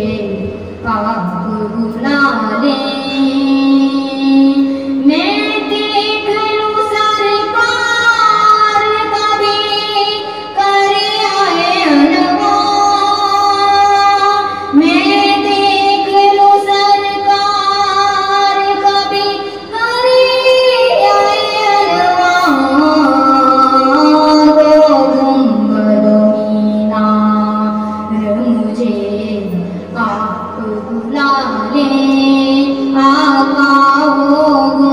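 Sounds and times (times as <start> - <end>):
woman singing melodic lines: 0.0 - 34.9.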